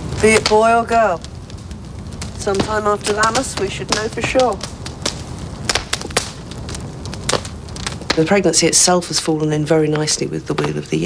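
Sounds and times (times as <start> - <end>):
low steady rumble: 0.0 - 11.0.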